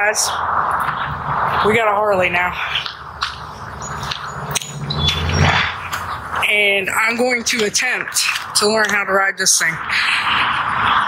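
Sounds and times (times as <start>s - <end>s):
motorcycle engine rumble: 0.0s - 7.8s.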